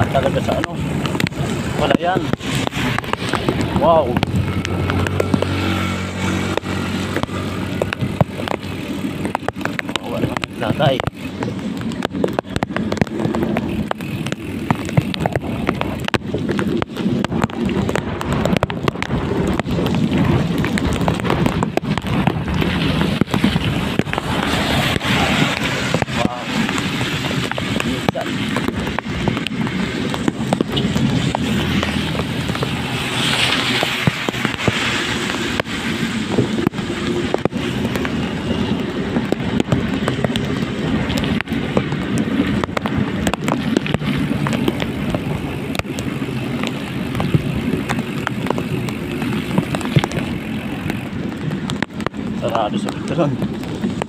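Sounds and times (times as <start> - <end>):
rain striking microphone: 0.0 - 54.0
small crackling clicks: 0.0 - 54.0
steady low rumble: 0.0 - 54.0
wind buffeting microphone: 0.0 - 54.0.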